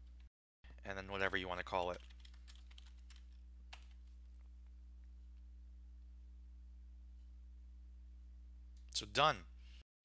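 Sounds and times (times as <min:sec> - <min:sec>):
steady low hum: 0:00.0 - 0:09.8
typing on computer keyboard: 0:01.7 - 0:04.0.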